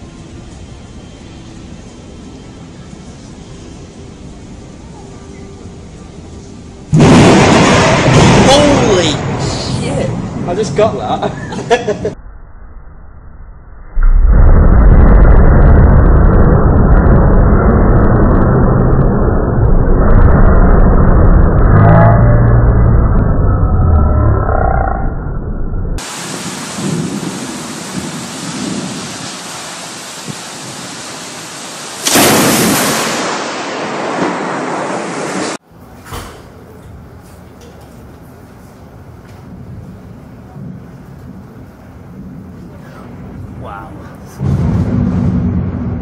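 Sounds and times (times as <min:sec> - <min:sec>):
heavy rain: 0:06.4 - 0:11.0, 0:26.0 - 0:35.6, 0:38.4 - 0:46.0
thunderclap and rumble: 0:06.9 - 0:12.2, 0:14.0 - 0:46.0
loud burst of noise: 0:06.9 - 0:36.4, 0:39.5 - 0:46.0.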